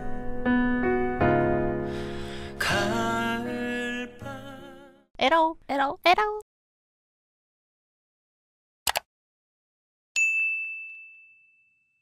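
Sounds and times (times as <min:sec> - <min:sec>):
notification bell ding: 0:10.2 - 0:12.0.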